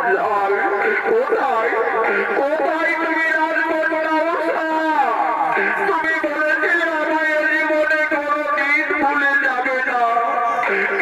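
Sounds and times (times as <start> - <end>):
voice over horn loudspeaker: 0.0 - 11.0.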